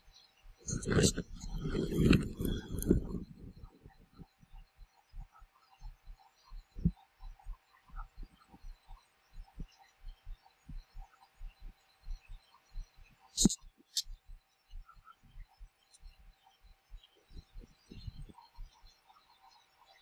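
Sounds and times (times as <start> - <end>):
soft low thumps: 0.7 - 4.4.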